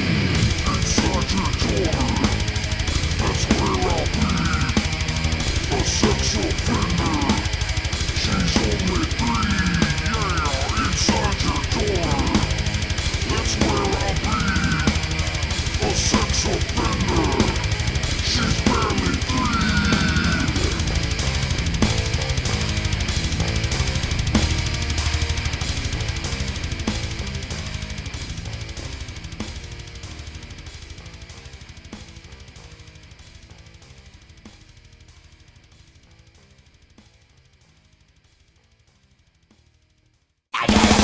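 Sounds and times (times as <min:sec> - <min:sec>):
heavy metal drums and bass: 0:00.0 - 0:41.0.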